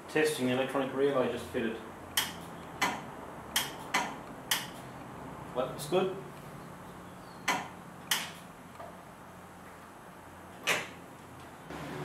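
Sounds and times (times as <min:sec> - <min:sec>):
headlight relay clicks: 0:02.1 - 0:04.8, 0:07.5 - 0:08.9.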